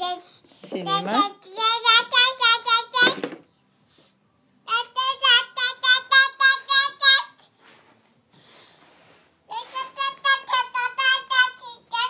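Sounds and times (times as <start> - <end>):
toddler girl chanting: 0.0 - 3.3, 4.6 - 7.6, 9.5 - 12.0.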